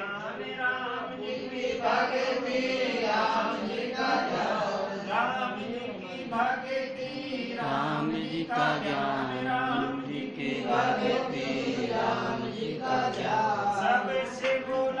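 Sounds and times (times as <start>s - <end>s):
voices chanting: 1.1s - 14.8s.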